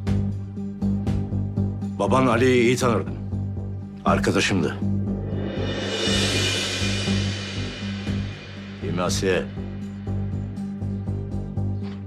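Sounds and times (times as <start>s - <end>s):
low drone: 4.8s - 11.7s
high shimmering wash: 5.0s - 10.8s.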